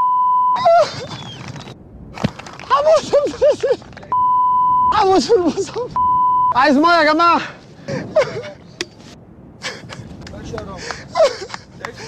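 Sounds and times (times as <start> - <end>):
censor bleep: 0.0 - 0.6, 4.1 - 5.0, 6.0 - 6.6.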